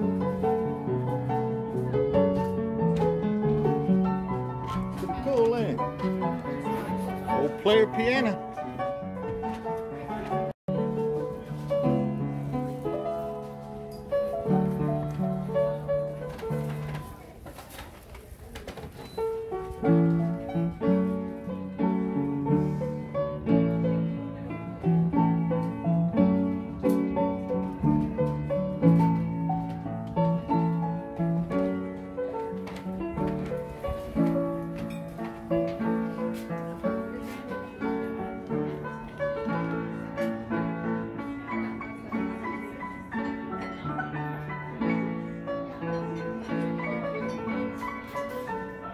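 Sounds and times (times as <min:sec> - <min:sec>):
player piano playing: 0:00.0 - 0:17.4, 0:19.1 - 0:48.9.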